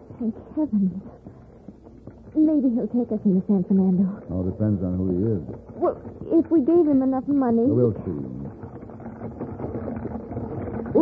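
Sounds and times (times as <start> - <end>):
horse hooves: 0.0 - 11.0
wagon wheels rattling: 0.0 - 11.0.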